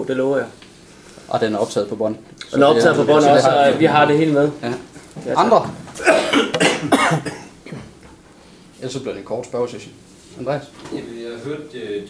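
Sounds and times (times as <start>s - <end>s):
person coughing: 6.0s - 8.0s.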